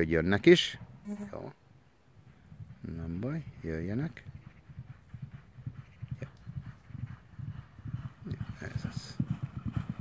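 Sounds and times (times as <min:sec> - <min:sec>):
horse hoofbeats on gravel: 0:04.1 - 0:10.0.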